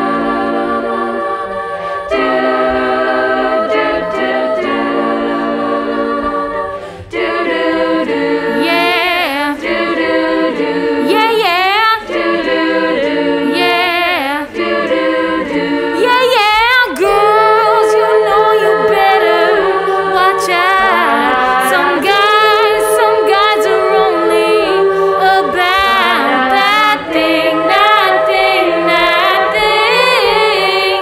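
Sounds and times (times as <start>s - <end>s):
female a cappella group singing: 0.0s - 31.0s.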